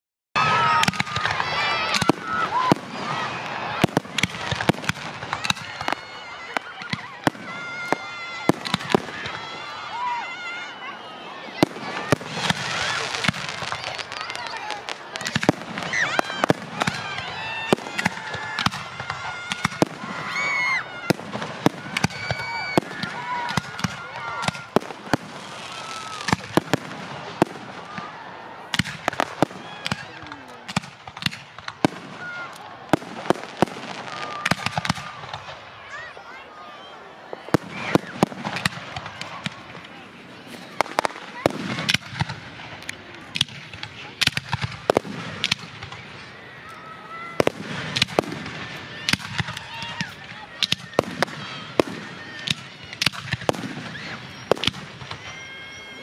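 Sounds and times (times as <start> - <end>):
fireworks bursting: 0.4 - 10.8, 11.4 - 56.0
crowd voices and shouts: 0.4 - 56.0.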